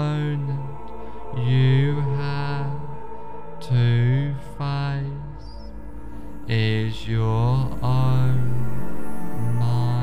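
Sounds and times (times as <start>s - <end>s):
low chant-like drone music: 0.0s - 10.0s.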